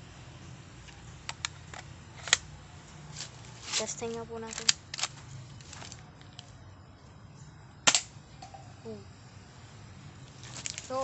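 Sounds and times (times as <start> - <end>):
pellet gun shot: 7.8 - 8.2.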